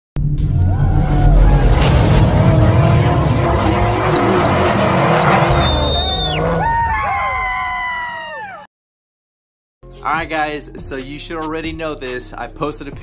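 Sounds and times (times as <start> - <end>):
loud rumbling car engine roar: 0.2 - 7.2
squealing whines: 0.6 - 8.1.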